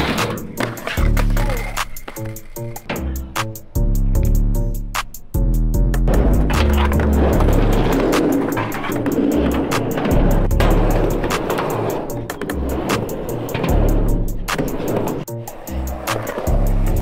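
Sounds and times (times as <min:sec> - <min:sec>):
skateboard wheels rolling: 0:00.0 - 0:03.7, 0:06.0 - 0:17.0
music with steady beat and bass: 0:00.0 - 0:17.0.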